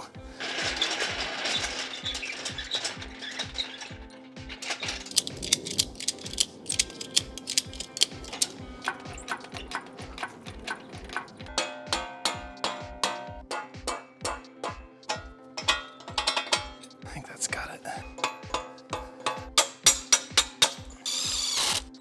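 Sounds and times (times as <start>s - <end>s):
background music beat: 0.0s - 22.0s
ratchet strap clicking: 2.6s - 12.5s, 18.2s - 22.0s.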